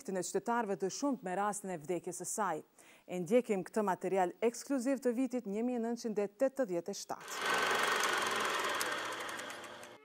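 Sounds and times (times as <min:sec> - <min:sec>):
film projector ticking rattle: 0:07.3 - 0:10.0.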